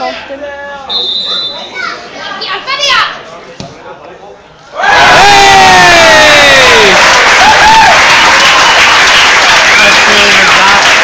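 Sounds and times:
referee whistle: 0:00.9 - 0:01.8.

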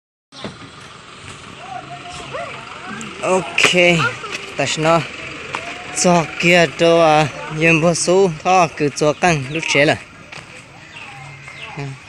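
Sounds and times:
steady outdoor hiss: 0:00.4 - 0:12.0.

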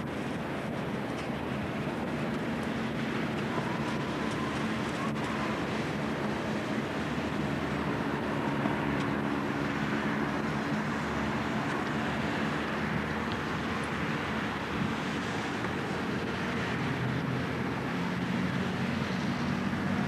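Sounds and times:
outdoor rumble and hiss: 0:00.0 - 0:20.0.

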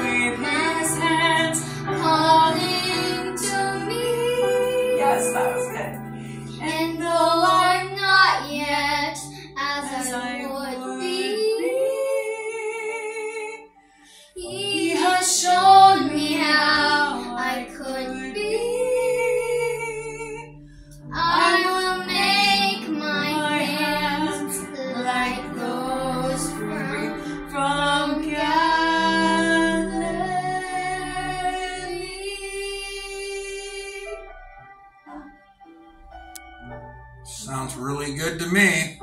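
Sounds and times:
girl and woman singing duet: 0:00.0 - 0:34.1.

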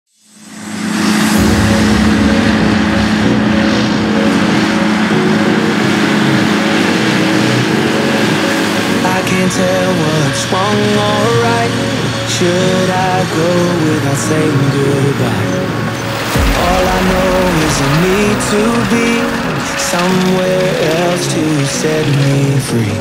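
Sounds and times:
mowers whirring: 0:00.3 - 0:23.0
tractor engine running: 0:00.5 - 0:23.0
melodic music: 0:00.8 - 0:23.0.

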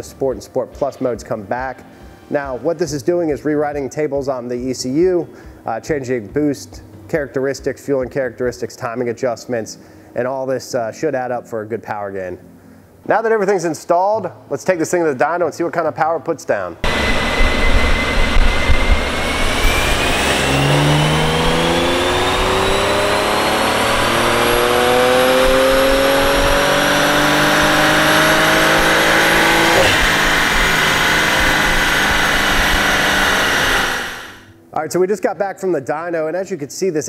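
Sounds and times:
car engine revving at full throttle: 0:16.8 - 0:34.5
high turbo whine: 0:16.8 - 0:34.6.

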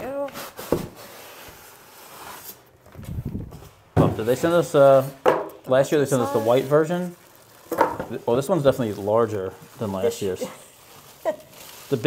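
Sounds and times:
plastic bag rustling: 0:05.7 - 0:12.0.

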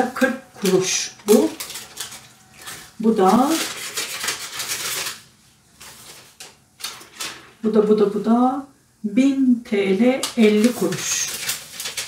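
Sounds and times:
paper receipt rustling: 0:00.1 - 0:07.7, 0:10.0 - 0:12.0.

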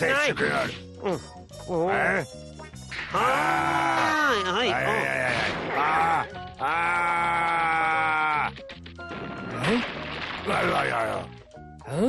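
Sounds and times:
background music: 0:00.0 - 0:12.0
man wailing in distress: 0:04.7 - 0:08.5.

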